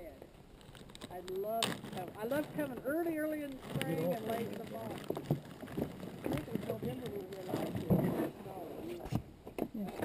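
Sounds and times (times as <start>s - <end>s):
people conversing: 0.0s - 10.0s.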